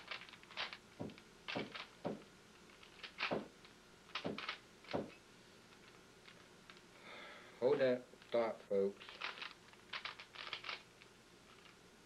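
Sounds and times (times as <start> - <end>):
puzzle cube clicking and rattling: 0.0 - 2.0, 2.7 - 3.5, 4.1 - 5.0, 9.0 - 10.9.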